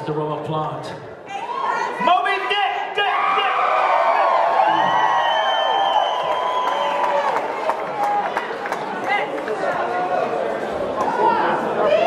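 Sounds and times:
audience cheering and shouting: 1.3s - 10.4s
long whistles: 5.2s - 7.1s.

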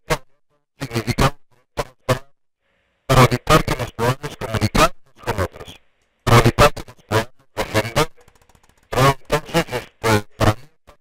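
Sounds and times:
person talking: 3.1s - 8.3s, 8.9s - 10.8s.

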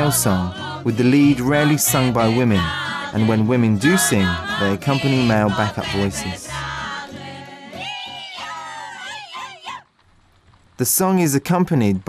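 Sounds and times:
person singing folk song: 0.0s - 9.8s.

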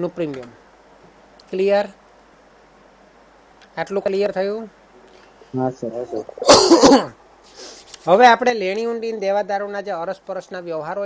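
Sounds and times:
short voiced sounds: 5.6s - 7.1s
harsh cough: 6.4s - 7.2s.

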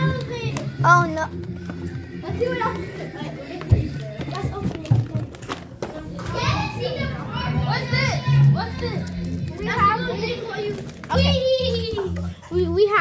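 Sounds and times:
children calling out excitedly: 6.0s - 13.0s.

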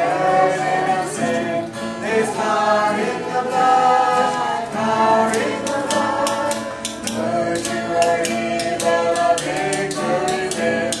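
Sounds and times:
group singing: 0.0s - 11.0s
strummed acoustic guitar: 0.0s - 11.0s.

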